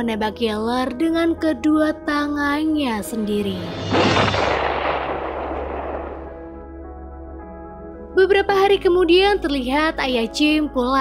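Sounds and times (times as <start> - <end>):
rifle shot echoing: 3.8 - 6.7.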